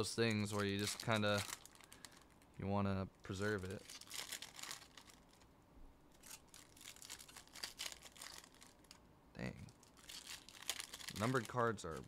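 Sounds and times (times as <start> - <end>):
foil wrapper crinkling: 0.0 - 5.5, 6.1 - 9.0, 9.7 - 12.0.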